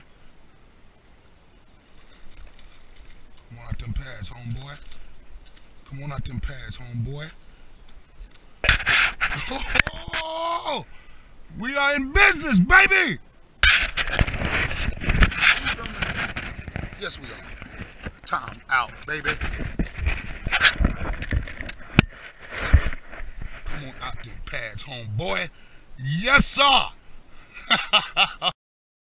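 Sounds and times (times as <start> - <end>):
brush rubbing on camera: 8.6 - 9.6, 13.7 - 18.1
clothing rustling and scraping: 13.7 - 24.4.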